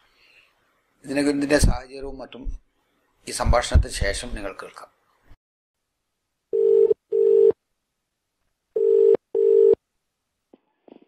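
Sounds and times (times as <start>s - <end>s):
telephone ringback tone: 6.6s - 7.6s, 8.8s - 9.8s.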